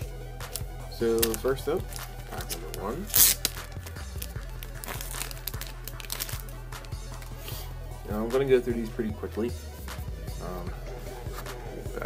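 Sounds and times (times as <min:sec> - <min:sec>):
background music with low bass: 0:00.0 - 0:12.0
cards crinkling and rustling: 0:00.5 - 0:07.4.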